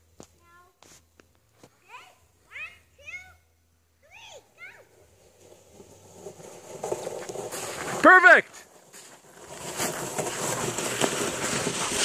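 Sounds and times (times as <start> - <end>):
sled scraping over icy snow: 4.2 - 12.0.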